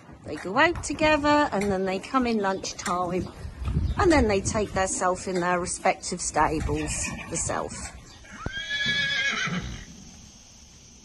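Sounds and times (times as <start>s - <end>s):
horse whinnying: 8.2s - 9.9s.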